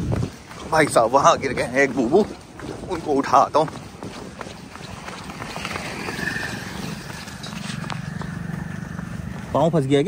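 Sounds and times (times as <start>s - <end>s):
footsteps on a paved road: 0.0s - 10.0s
motorcycle engine hum: 3.8s - 10.0s.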